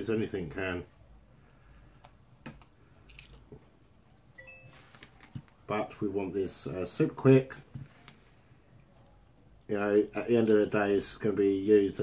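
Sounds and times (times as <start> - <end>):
brief thin high tone: 4.4 - 4.8.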